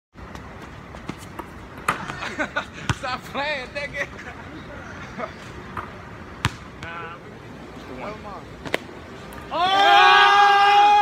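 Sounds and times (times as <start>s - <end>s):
steady background noise: 0.2s - 11.0s.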